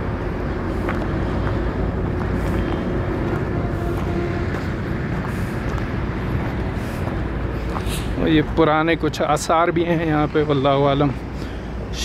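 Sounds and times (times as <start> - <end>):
distant road traffic: 0.0 - 12.0.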